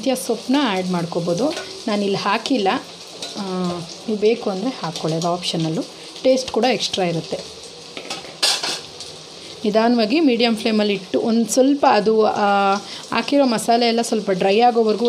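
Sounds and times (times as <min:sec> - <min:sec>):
food sizzling in oil: 0:00.0 - 0:15.0
person talking: 0:03.4 - 0:07.4
skimmer clinking and scraping pan: 0:08.0 - 0:08.9.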